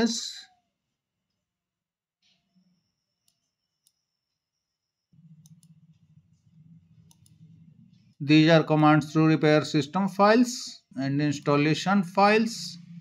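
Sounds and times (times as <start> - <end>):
faint low hum: 0.0 - 13.0
computer mouse clicks: 2.2 - 4.4, 5.1 - 8.2.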